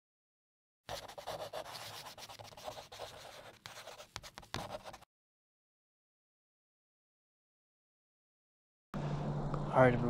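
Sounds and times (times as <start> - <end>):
pen scratching on paper: 0.9 - 5.1.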